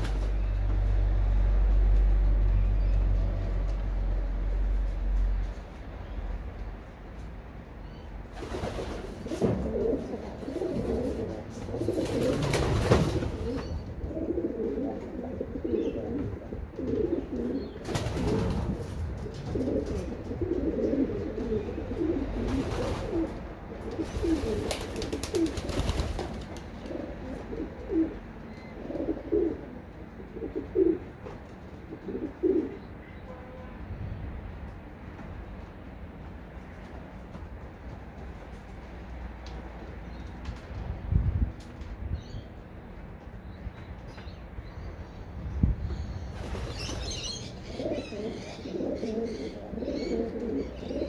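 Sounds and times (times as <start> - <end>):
pigeons cooing: 9.0 - 31.1, 31.9 - 32.9, 46.5 - 51.0.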